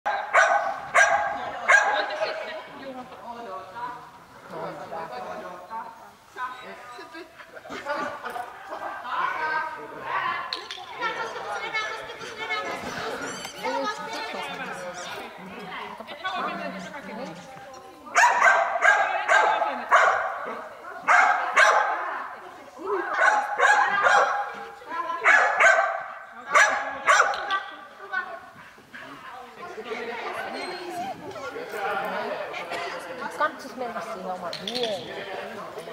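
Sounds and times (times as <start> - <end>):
dog barking with echo: 0.1 - 2.2, 18.2 - 20.4, 21.0 - 22.0, 23.1 - 24.5, 25.2 - 27.4.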